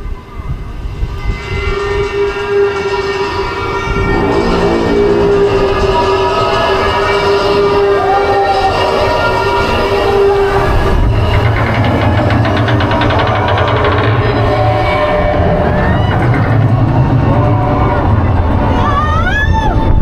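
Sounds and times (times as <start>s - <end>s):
lift chain clatter: 9.8s - 17.8s.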